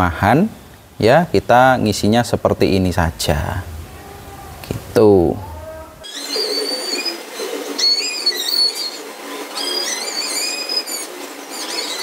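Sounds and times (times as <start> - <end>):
faint steady hiss: 0.0 - 7.8
birds singing: 5.4 - 12.0.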